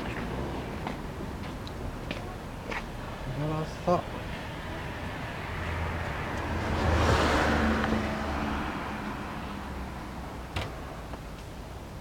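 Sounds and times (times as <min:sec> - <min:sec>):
vehicle passing by: 0:00.0 - 0:01.2, 0:03.1 - 0:11.0.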